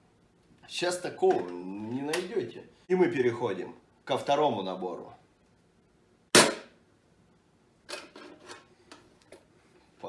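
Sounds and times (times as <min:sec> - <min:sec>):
sharp knock: 0:06.3 - 0:06.8.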